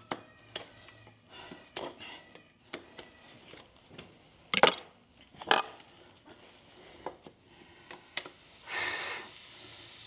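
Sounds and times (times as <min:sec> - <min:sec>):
hot horseshoe sizzling on hoof: 0:07.4 - 0:10.0.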